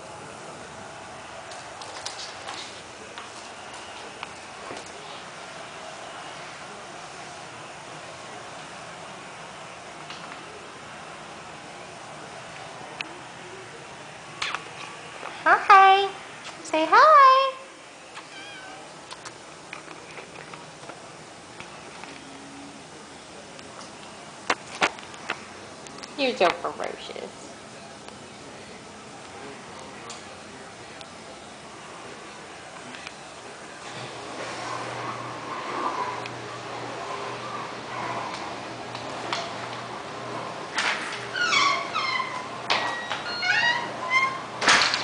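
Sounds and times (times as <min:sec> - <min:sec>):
kitten meowing: 0:18.2 - 0:18.9.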